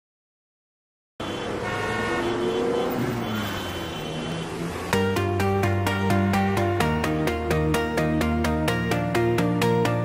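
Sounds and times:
car horns honking: 0:01.2 - 0:05.2
street traffic: 0:01.2 - 0:10.0
electronic beat: 0:05.0 - 0:10.0.

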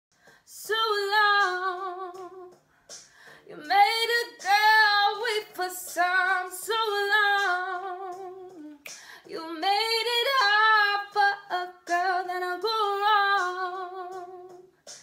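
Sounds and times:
woman singing a cappella: 0:00.5 - 0:02.6, 0:03.4 - 0:14.8.

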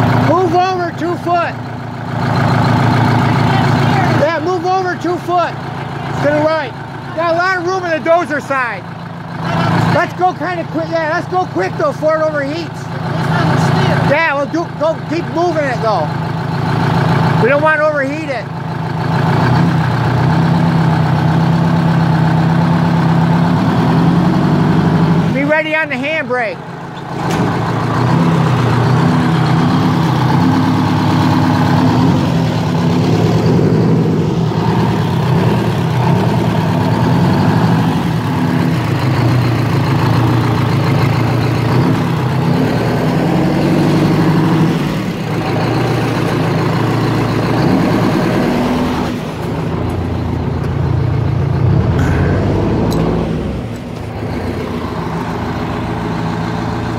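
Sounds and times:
diesel truck engine running: 0:00.0 - 0:56.9.

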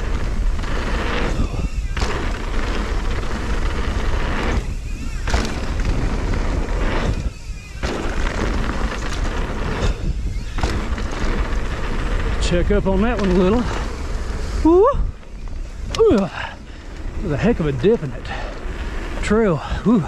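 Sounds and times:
bike rattling over bumps: 0:00.0 - 0:20.0
bike tyres rumbling on dirt: 0:00.0 - 0:20.0
wind buffeting microphone: 0:00.0 - 0:20.0.

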